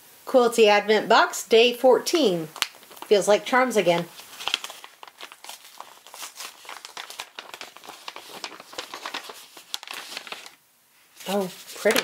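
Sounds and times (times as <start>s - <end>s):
packet crinkling and rustling: 2.5s - 10.6s, 11.2s - 12.0s.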